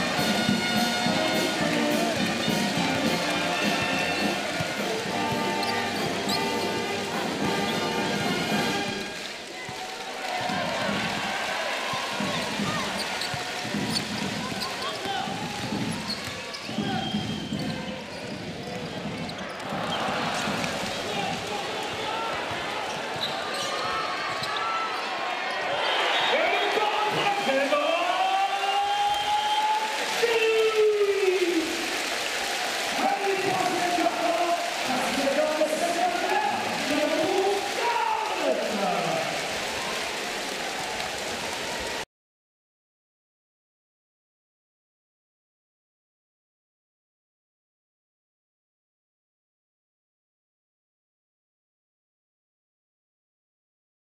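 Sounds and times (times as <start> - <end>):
players' voices: 0.0 - 41.9
arena crowd: 0.0 - 42.1
sneakers squeaking on floor: 0.5 - 7.0, 12.2 - 20.9, 21.9 - 25.8
basketball dribbling on hardwood: 12.2 - 20.7.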